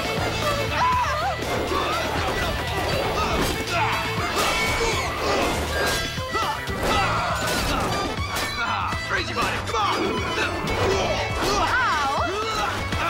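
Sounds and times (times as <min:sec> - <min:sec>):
action music: 0:00.0 - 0:13.0.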